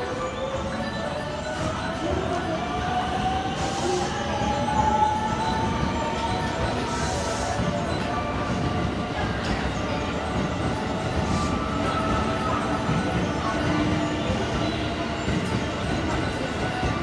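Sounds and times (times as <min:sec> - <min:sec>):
wheels rumbling on rail: 0:00.0 - 0:17.0.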